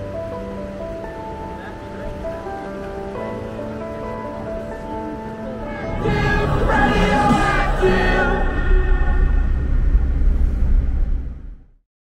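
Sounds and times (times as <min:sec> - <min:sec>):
road and engine rumble: 0:00.0 - 0:11.7
wind buffeting microphone: 0:00.3 - 0:11.7.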